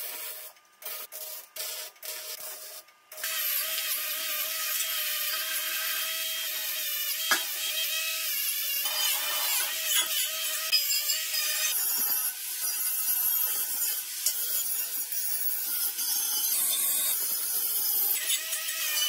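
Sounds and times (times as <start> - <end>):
grinder grinding steel: 2.4 - 19.0.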